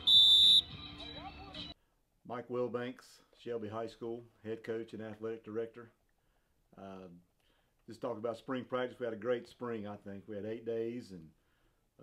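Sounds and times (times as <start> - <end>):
whistle blast: 0.0 - 1.2.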